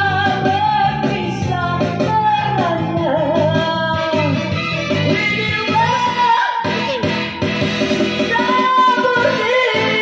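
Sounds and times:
woman singing into a microphone: 0.0 - 7.2, 8.2 - 10.0
amplified backing music: 0.0 - 10.0.

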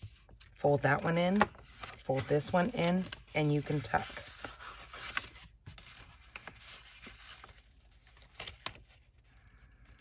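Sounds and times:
cardstock rustling and scraping: 0.0 - 10.0.

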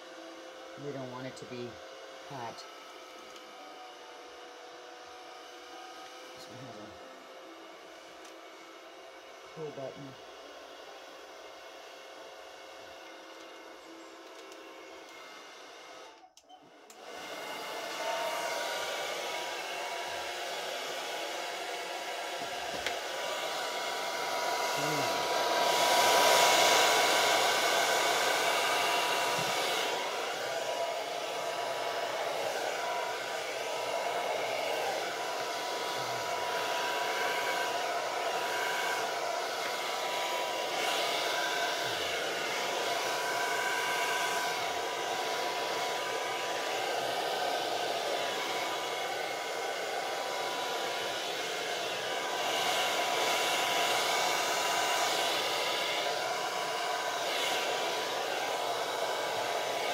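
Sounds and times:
hair dryer blowing: 0.0 - 59.9.

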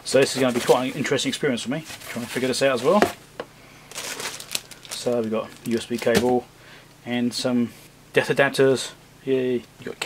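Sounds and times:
packaging rustling: 3.9 - 6.4.

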